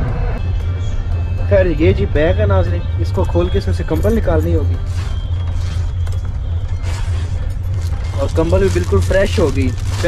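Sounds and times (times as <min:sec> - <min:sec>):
moving train rumble: 0:00.0 - 0:10.0
fabric bag rustling: 0:06.7 - 0:10.0.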